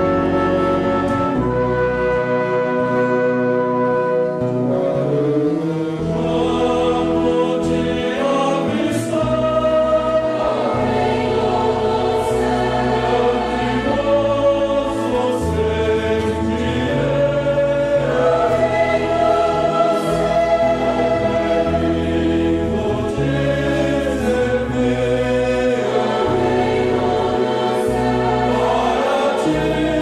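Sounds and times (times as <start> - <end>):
bass line in held notes: 0.0 - 30.0
brass: 0.0 - 30.0
choir singing a hymn: 0.0 - 30.0
saxophones: 0.0 - 30.0
strings: 0.0 - 30.0.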